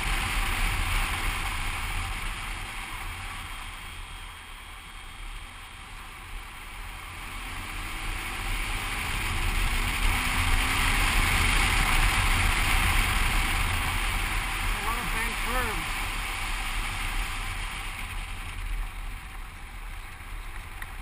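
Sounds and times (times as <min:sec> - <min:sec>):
motorcycle engine drone: 0:00.0 - 0:21.0.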